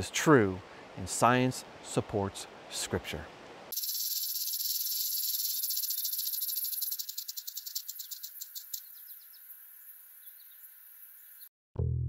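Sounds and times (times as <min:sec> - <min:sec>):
rattlesnake tail rattle: 0:03.7 - 0:11.4.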